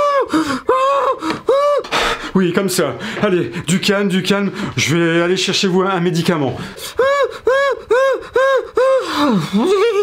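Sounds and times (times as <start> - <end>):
person gasping high-pitched breaths: 0.0 - 2.4, 6.6 - 9.8.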